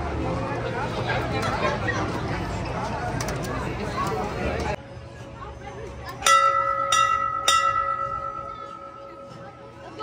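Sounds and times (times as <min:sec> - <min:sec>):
ship's bell ringing: 0:06.2 - 0:10.0.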